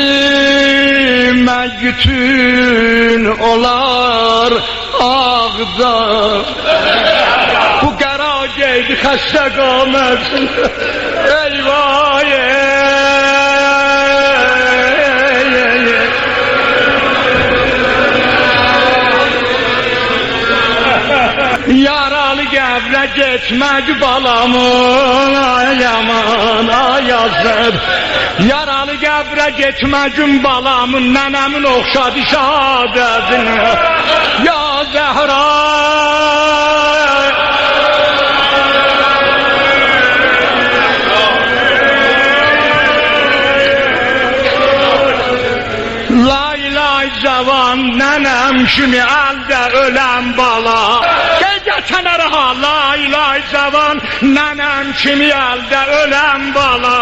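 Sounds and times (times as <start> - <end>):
man chanting a lament: 0.0 - 57.0.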